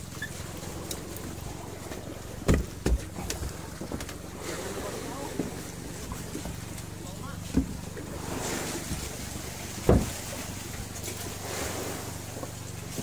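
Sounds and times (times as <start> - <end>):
boat engine humming: 0.0 - 13.0
heavy thumps: 9.8 - 10.2.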